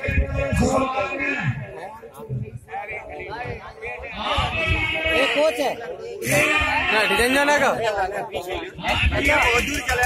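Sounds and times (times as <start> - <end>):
men shouting: 6.2 - 7.8, 8.8 - 10.0.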